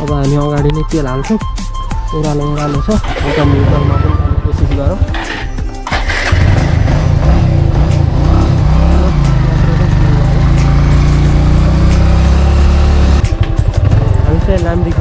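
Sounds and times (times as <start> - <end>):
motorcycle engine revving: 3.0 - 15.0.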